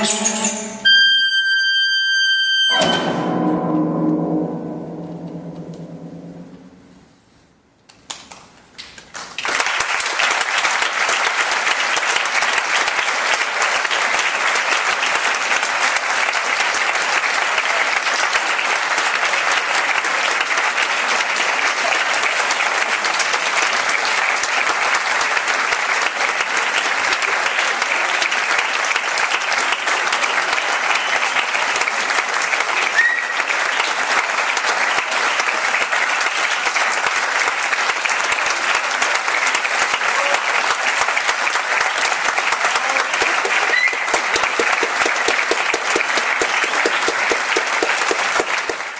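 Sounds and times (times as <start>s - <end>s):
audience applauding: 8.1s - 48.9s.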